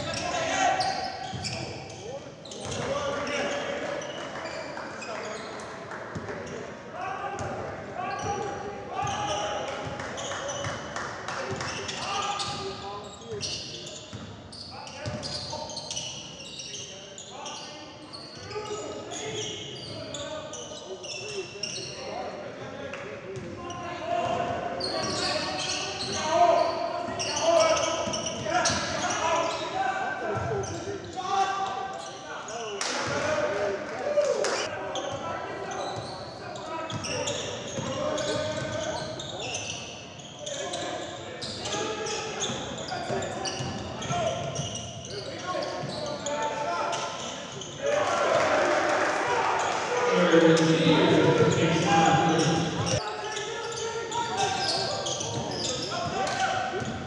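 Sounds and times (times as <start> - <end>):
people calling out: 48.1 - 53.0.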